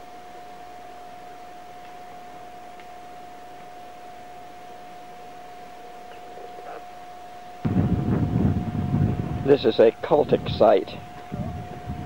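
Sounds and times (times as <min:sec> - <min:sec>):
constant hum: 0:00.0 - 0:12.0
recording hiss: 0:00.0 - 0:12.0
low rumbling noise on microphone: 0:07.5 - 0:12.0.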